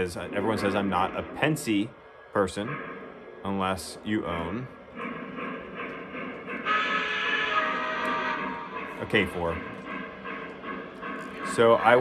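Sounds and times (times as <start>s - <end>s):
electronic steam whistle chord: 6.4s - 9.6s.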